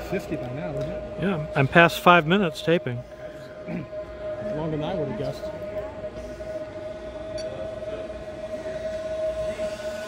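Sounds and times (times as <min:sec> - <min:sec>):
small electric motors whining: 0:00.0 - 0:10.0.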